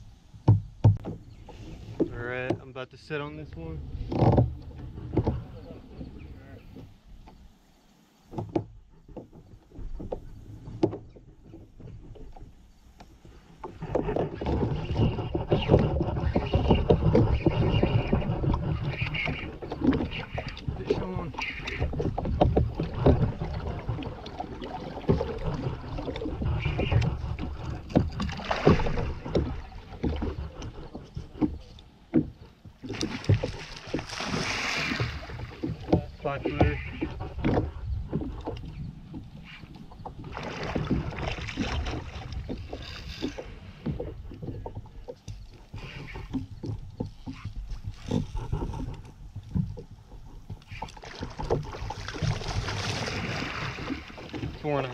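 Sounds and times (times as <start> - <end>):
knocks on kayak: 0.4 - 1.3
water splashing: 8.2 - 54.9.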